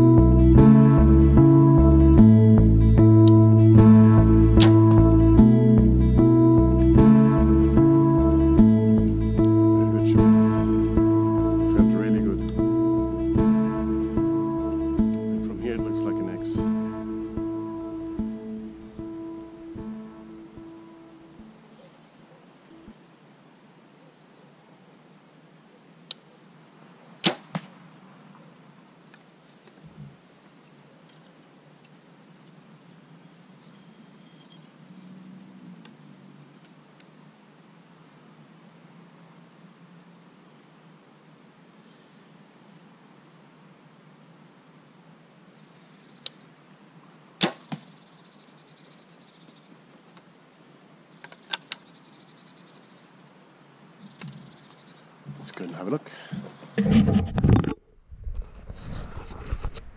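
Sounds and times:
bow string crack: 4.5 - 5.2, 27.2 - 27.8, 47.4 - 47.9
arrow striking target: 4.6 - 5.0, 27.2 - 27.8, 47.4 - 47.9.

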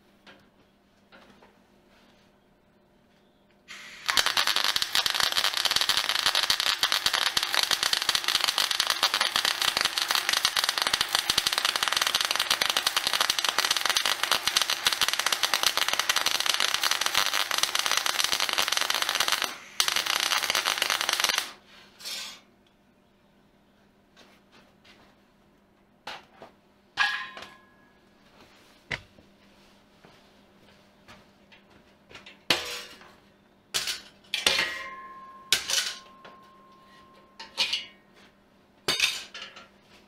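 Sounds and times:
arc welding crackle: 3.7 - 21.6.

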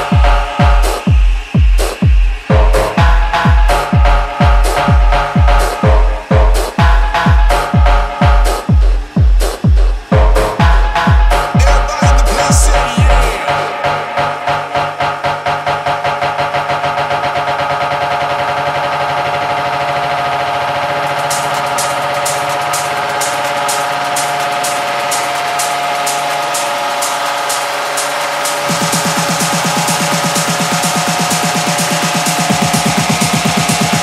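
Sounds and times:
pulsing bass: 0.0 - 14.5.

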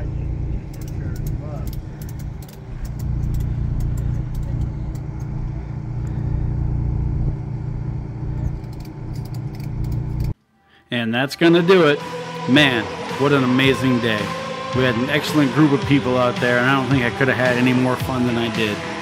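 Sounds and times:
low motor drone: 0.0 - 10.4
sharp clicks: 0.6 - 5.3.

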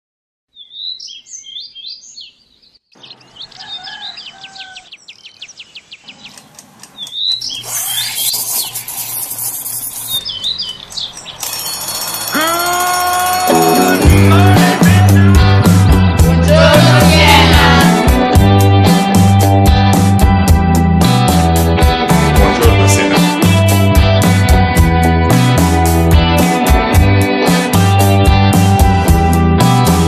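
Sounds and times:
birds chirping: 0.5 - 15.1
intro music with rising glides: 10.7 - 30.0
fast even ticking: 11.0 - 14.9.

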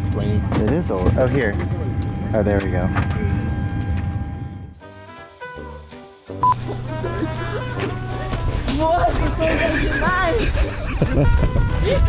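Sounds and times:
airliner cabin hum: 0.0 - 4.8, 6.4 - 12.0
electronic tones changing pitch: 6.4 - 6.9.

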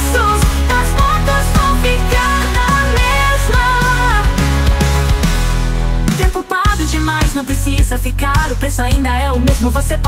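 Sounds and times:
pop song with sung melody: 0.0 - 10.0.

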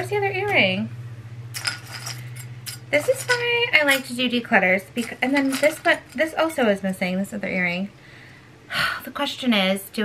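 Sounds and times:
steady low hum: 0.0 - 10.0
jewelry clinking against ceramic bowl: 1.5 - 6.8.

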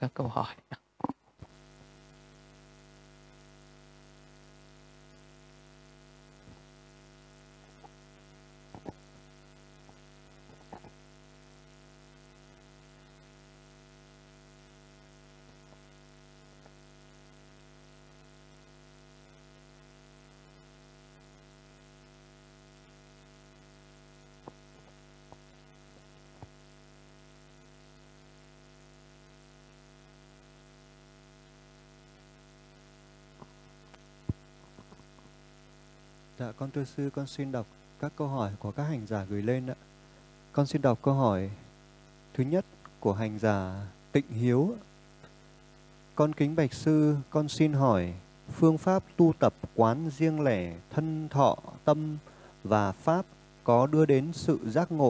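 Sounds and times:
electrical mains hum: 0.0 - 55.0.

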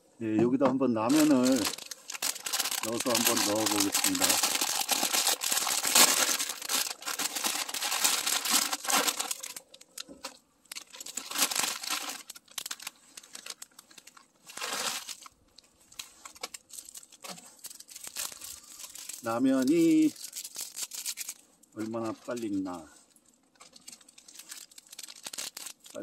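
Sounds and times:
plastic packet tearing and crinkling: 1.1 - 22.8, 23.6 - 26.0.

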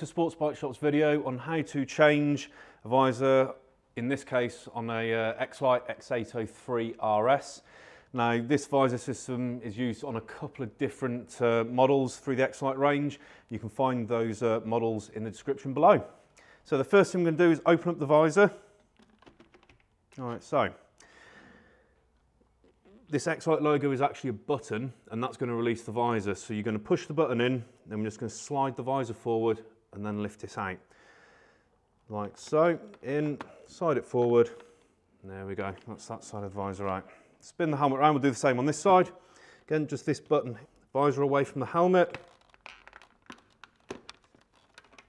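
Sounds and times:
plastic visor clicks and scrapes: 18.8 - 20.2, 42.0 - 45.0
man's soft exhale: 21.0 - 22.0.

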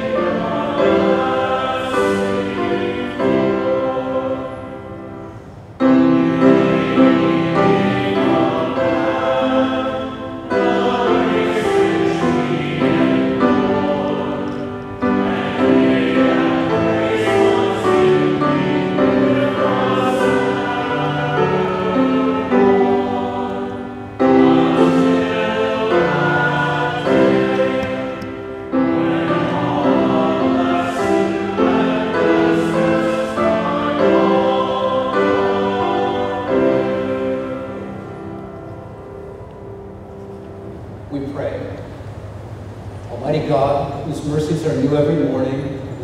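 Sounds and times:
many voices singing a hymn: 0.0 - 40.6.

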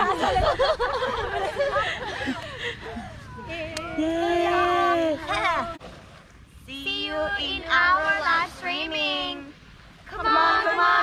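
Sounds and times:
young women singing together: 6.7 - 11.0.

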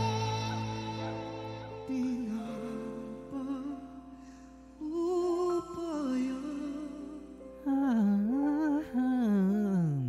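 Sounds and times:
man singing a slow ballad: 0.0 - 10.0.

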